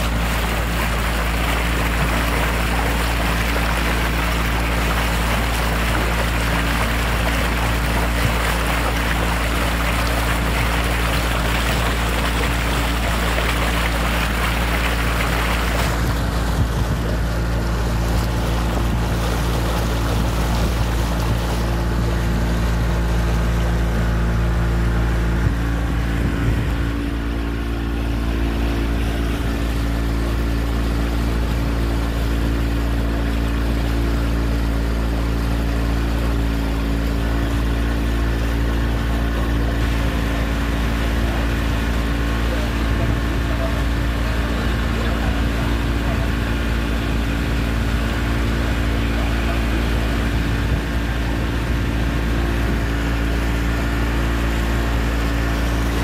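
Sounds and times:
boat motor running: 0.0s - 56.0s
water or wind rushing: 0.0s - 56.0s.

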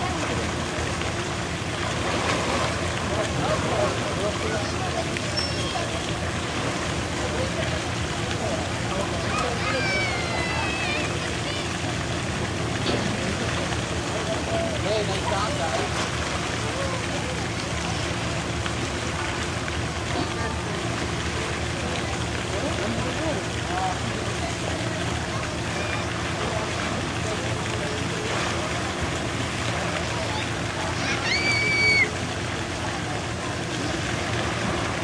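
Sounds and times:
water sloshing: 0.0s - 10.4s.

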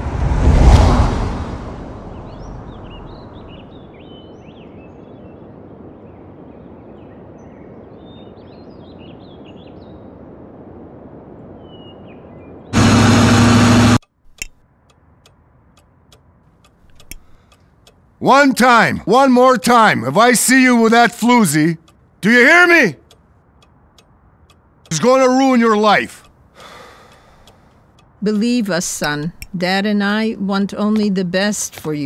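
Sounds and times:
whoosh: 0.0s - 3.8s
birds chirping: 1.9s - 10.4s, 11.4s - 12.9s, 15.4s - 32.0s
loud noise: 12.8s - 14.0s
quiet ticking: 14.0s - 18.2s, 21.1s - 22.2s, 23.0s - 25.3s, 25.9s - 32.0s.

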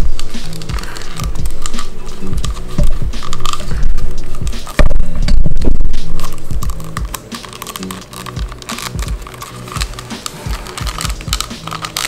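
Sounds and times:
background music: 0.0s - 12.0s
plastic parts clicking and rattling: 0.0s - 12.0s.

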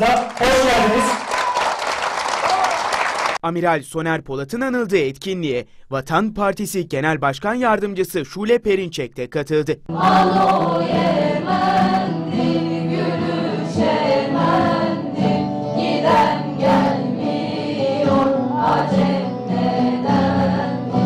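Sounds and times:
acoustic guitars: 9.9s - 21.0s
choir singing: 9.9s - 21.0s.

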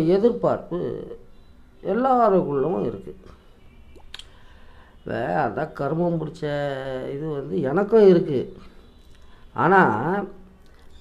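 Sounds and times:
faint background hiss: 0.0s - 11.0s
mouth clicks: 3.9s - 4.4s.

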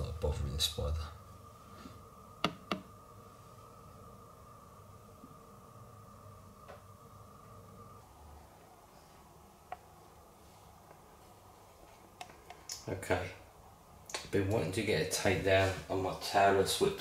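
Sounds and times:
faint high hum: 0.0s - 17.0s.

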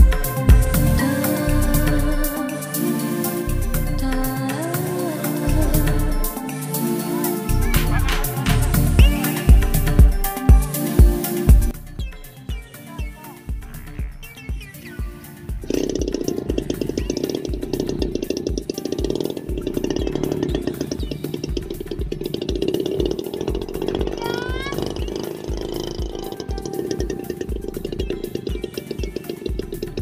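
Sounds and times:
background music with steady beat: 0.0s - 30.0s
small two-stroke engine running: 15.5s - 30.0s.

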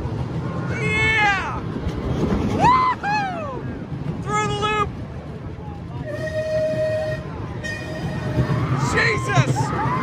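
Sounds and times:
roller coaster rumbling on track: 0.0s - 10.0s.

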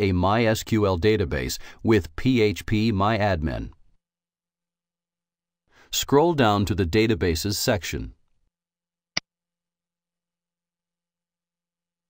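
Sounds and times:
faint breath: 1.6s - 1.8s.

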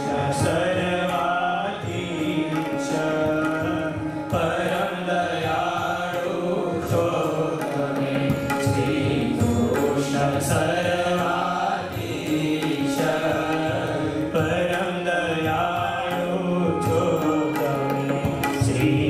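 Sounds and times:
devotional chant-like singing: 0.0s - 19.0s
tabla drumming: 0.0s - 19.0s.

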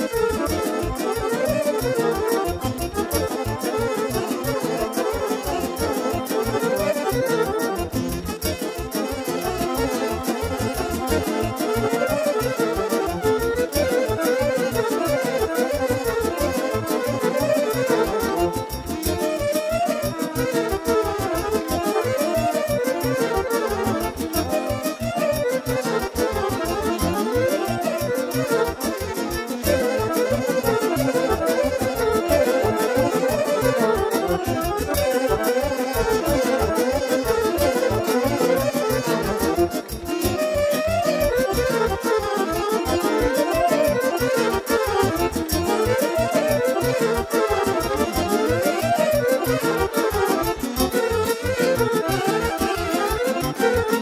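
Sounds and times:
keyboard: 0.0s - 54.0s
violins and saxophone melodies: 0.0s - 54.0s.

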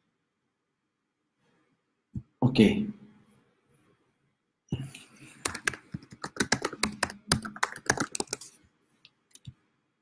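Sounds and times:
typing on computer keyboard: 5.4s - 8.6s.

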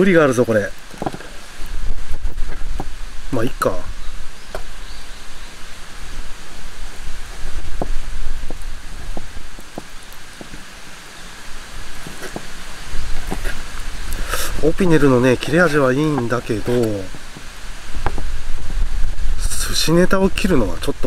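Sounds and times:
rushing outdoor noise: 0.0s - 21.0s.

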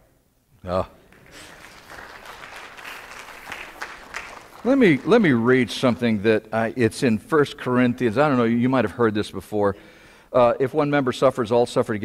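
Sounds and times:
audience applauding: 1.1s - 6.0s.

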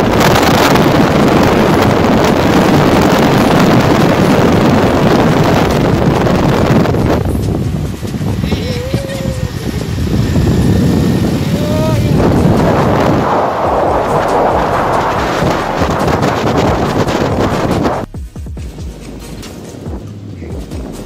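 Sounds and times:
motorcycle engine: 0.0s - 21.0s
road noise: 0.0s - 21.0s
wind rushing over microphone: 0.0s - 21.0s.

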